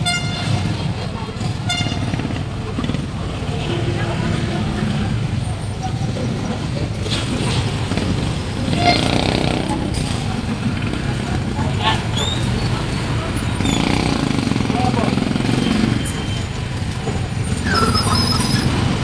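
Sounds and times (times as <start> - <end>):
motorcycle engines rumbling: 0.0 - 19.0.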